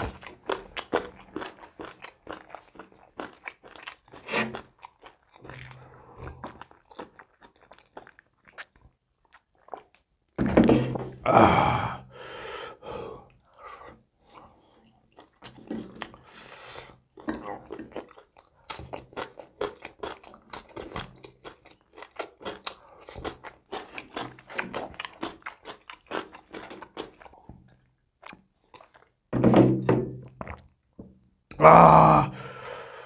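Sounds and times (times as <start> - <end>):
chewing and crunching: 0.0 - 10.1, 13.3 - 29.2
vocal grunt: 11.2 - 12.1, 31.5 - 32.6
person humming: 11.3 - 12.0, 31.5 - 32.5
wet mouth clicks: 28.2 - 29.1.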